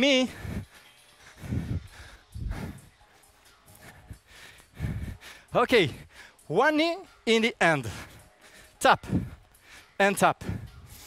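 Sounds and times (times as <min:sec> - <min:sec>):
man's heavy exhalations: 0:00.3 - 0:03.0.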